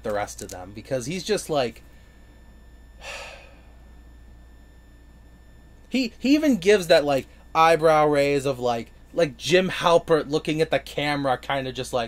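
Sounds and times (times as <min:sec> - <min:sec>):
man sighing: 0:03.0 - 0:03.8.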